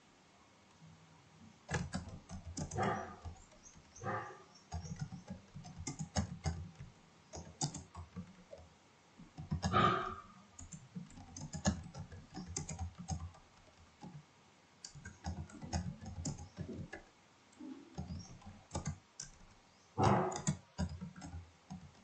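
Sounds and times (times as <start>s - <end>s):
keyboard key clicks: 1.7s - 8.6s, 9.3s - 14.2s, 14.8s - 17.0s, 17.9s - 22.0s.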